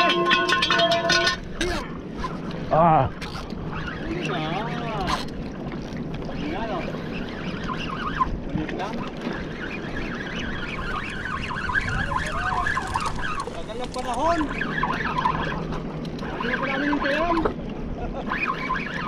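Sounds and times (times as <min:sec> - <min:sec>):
wind buffeting microphone: 0:00.0 - 0:18.2
sea water washing on rocks: 0:11.0 - 0:15.1.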